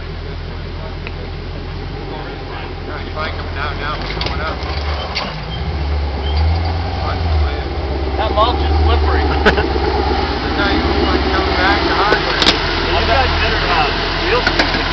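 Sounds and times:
engine rumbling at low revs: 0.0 - 14.9
people talking: 0.0 - 14.9.

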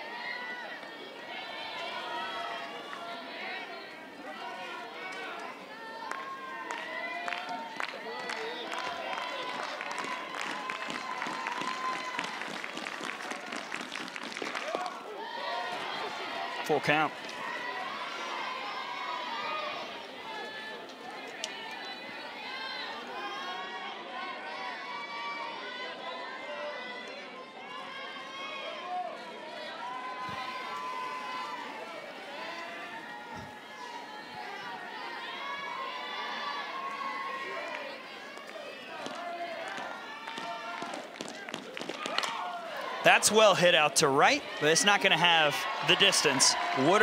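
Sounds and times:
crowd calling and chattering: 0.0 - 47.0.

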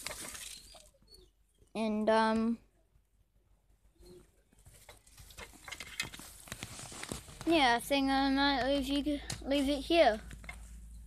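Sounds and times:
faint rustling on microphone: 4.4 - 7.9
small clicks and taps: 10.1 - 10.7.

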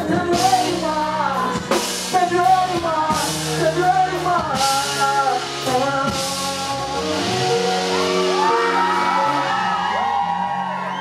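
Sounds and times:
man singing: 0.0 - 9.9
live band music: 0.0 - 11.0.

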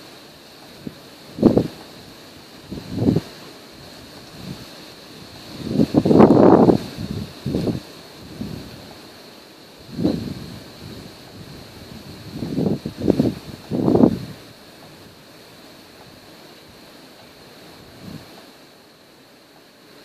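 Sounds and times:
wind buffeting microphone: 0.6 - 9.0, 9.8 - 18.4.

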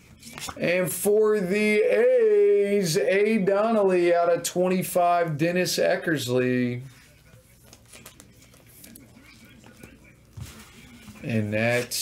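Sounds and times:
trading cards clicking and rustling: 7.6 - 12.0.

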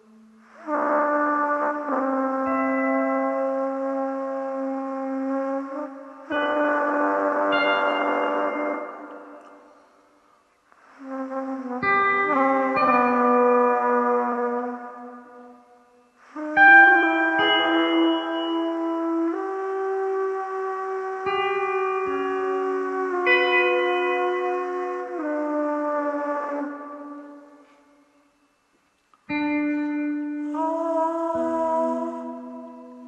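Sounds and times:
plastic tube trumpets holding notes: 0.0 - 9.9, 10.8 - 28.0, 29.3 - 33.0.

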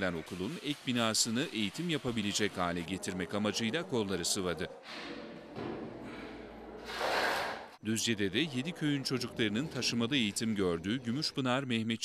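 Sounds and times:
trowel scraping mortar on concrete: 6.8 - 7.8.

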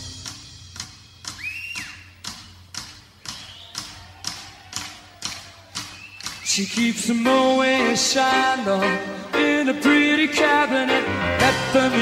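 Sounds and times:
high whistle: 1.2 - 2.2, 3.3 - 4.0, 5.8 - 6.8.

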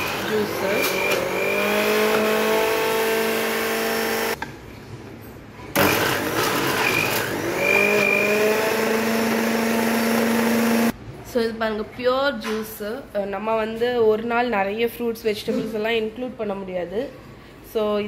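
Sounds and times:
mixer grinder motor whine: 0.0 - 4.4, 5.8 - 10.9.

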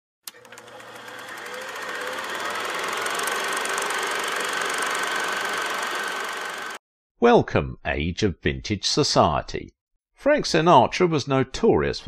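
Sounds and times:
film projector clatter: 0.3 - 6.8.

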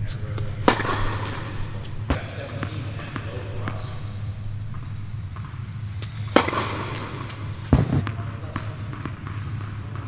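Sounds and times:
tennis racket hitting ball: 0.3 - 3.8, 4.6 - 10.0
ball bounces: 0.3 - 3.9, 4.6 - 10.0.

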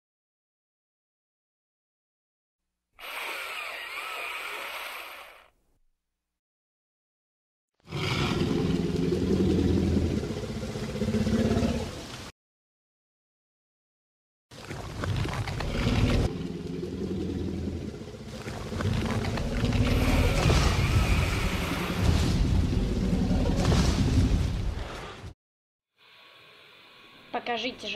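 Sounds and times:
rumbling dinosaur growl: 7.9 - 12.1, 15.1 - 25.2.

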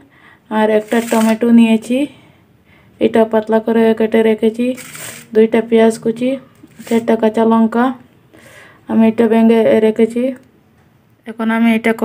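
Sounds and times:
person speaking: 0.5 - 2.2, 3.0 - 8.0.

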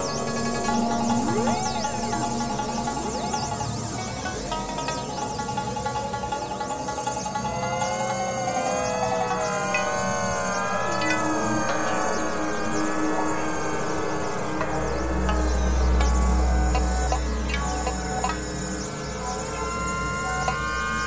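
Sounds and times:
loud low drone: 0.0 - 3.5, 7.4 - 21.0
layered electronic music: 0.0 - 5.1, 6.5 - 21.0
steady mid tone: 0.0 - 21.0.

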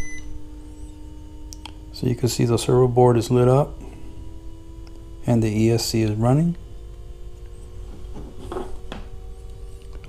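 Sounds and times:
steady electrical hum: 0.0 - 10.0.

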